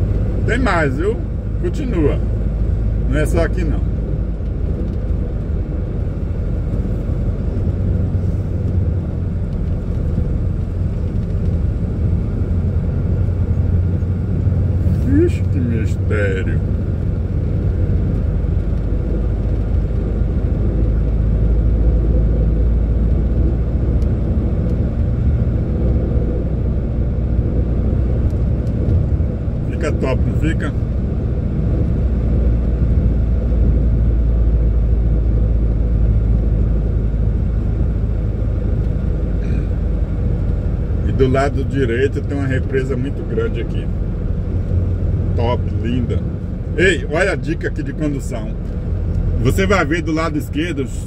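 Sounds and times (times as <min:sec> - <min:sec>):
diesel engine rumble: 0:00.0 - 0:51.0
road noise: 0:00.0 - 0:51.0.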